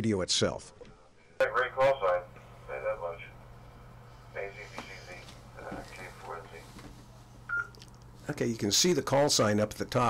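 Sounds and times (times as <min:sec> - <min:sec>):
low steady hum: 0:00.7 - 0:10.0.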